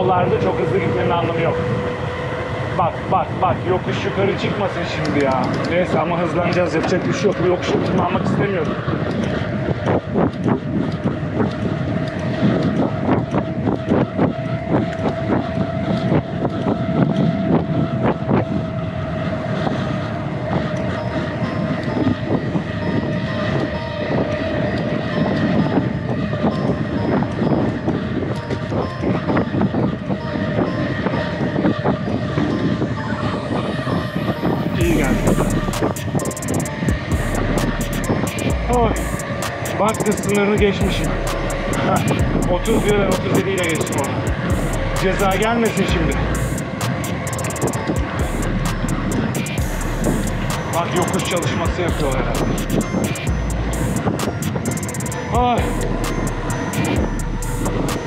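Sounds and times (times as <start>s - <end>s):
steady whine: 0.0s - 58.0s
bicycle rattling and clicking: 8.8s - 18.9s, 35.4s - 51.5s.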